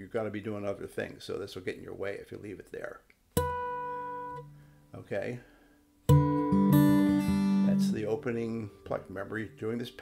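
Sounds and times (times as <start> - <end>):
acoustic guitar harmonic ringing: 3.4 - 4.8, 6.0 - 9.1.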